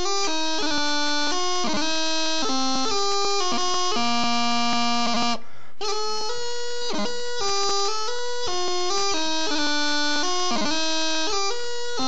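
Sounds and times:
practice chanter playing: 0.0 - 12.0.

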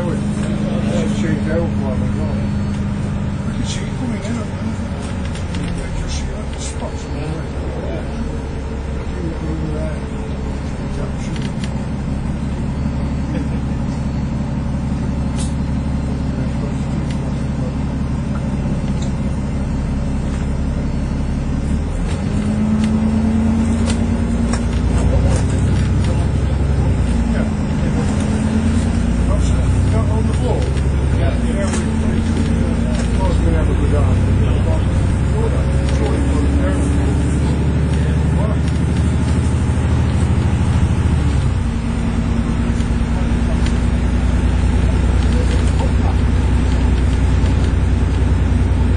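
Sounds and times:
bus engine running: 0.0 - 48.9.

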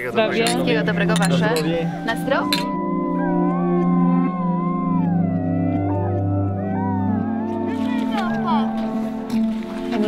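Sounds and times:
low background music chord: 0.0 - 10.0
dog howling: 2.1 - 9.1.

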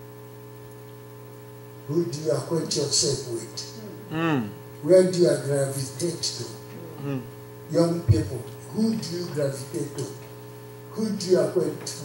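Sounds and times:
electrical mains hum: 0.0 - 12.0
man talking: 1.9 - 6.6, 7.7 - 10.2, 10.9 - 12.0.

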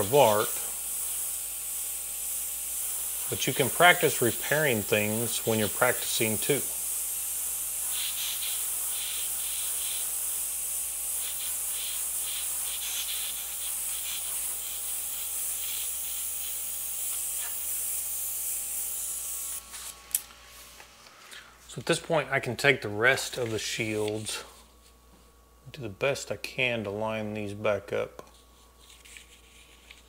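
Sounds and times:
airbrush spraying air hiss: 0.0 - 20.7.

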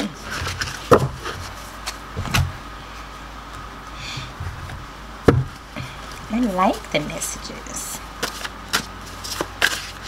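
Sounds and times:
cards being shuffled: 8.2 - 10.0.

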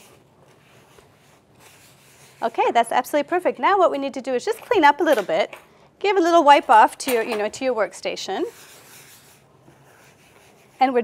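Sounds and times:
cloth wiping worktop: 8.5 - 10.8.

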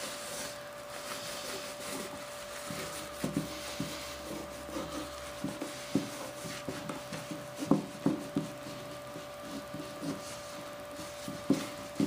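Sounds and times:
paper towel rubbing on mold: 0.0 - 12.0.

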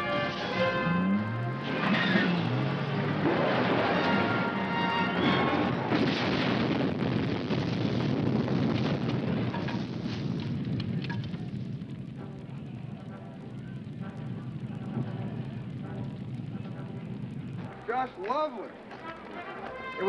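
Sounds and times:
explosion rumble and crackle: 0.1 - 20.0
faint voices: 10.9 - 19.3.

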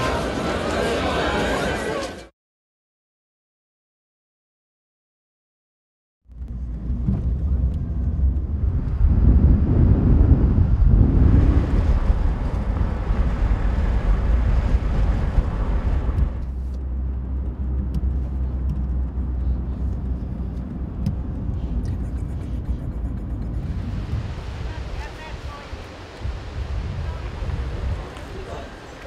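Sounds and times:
cars driving along road: 6.3 - 29.0.

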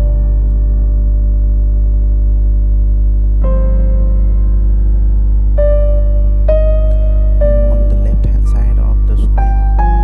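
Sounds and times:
keyboard chords: 0.0 - 10.0
steady low hum: 0.0 - 10.0.

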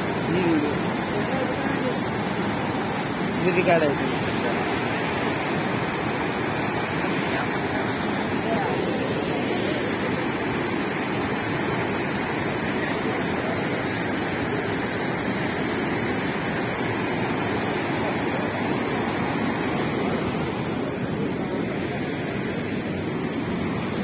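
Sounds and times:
water rushing through channel: 0.0 - 24.0.

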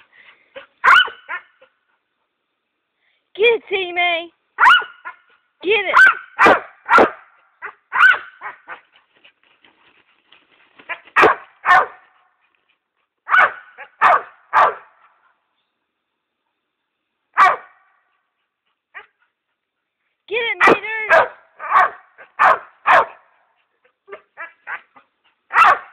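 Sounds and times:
dog barking excitedly: 0.6 - 1.7, 4.6 - 8.9, 10.9 - 12.2, 13.2 - 15.0, 17.4 - 17.8, 20.4 - 23.3, 24.0 - 25.9.

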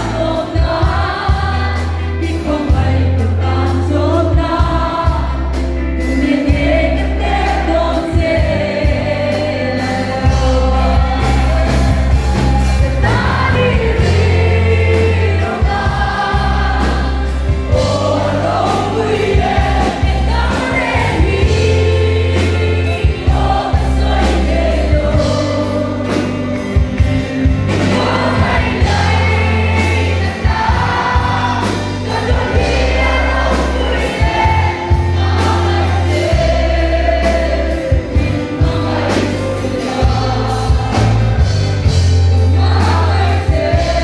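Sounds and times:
woman singing into a microphone: 0.0 - 11.9, 12.9 - 26.4
drum kit: 0.0 - 44.0
guitars: 0.0 - 44.0
heavy bass line: 0.0 - 44.0.

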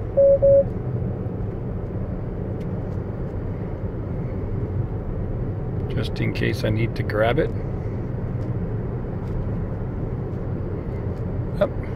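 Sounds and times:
road and tyre noise: 0.0 - 11.9
short car beeps: 0.1 - 0.7.

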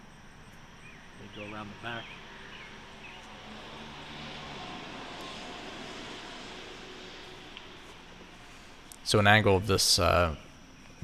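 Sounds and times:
distant engine droning: 0.0 - 10.7
outdoor background noise: 0.0 - 11.0.

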